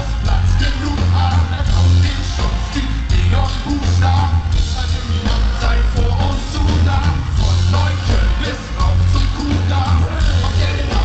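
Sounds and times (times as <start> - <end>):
heavy pulsing bass: 0.0 - 11.0
live band music through pa: 0.0 - 11.0.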